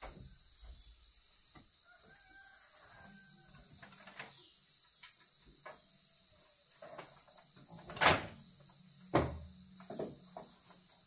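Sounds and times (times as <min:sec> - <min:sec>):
high insect chorus: 0:00.0 - 0:11.0
knocks on wooden window frame: 0:09.1 - 0:10.2.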